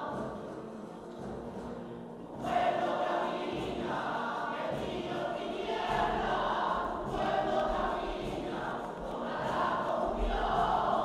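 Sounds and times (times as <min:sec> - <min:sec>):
choir singing a hymn: 0:00.0 - 0:11.0.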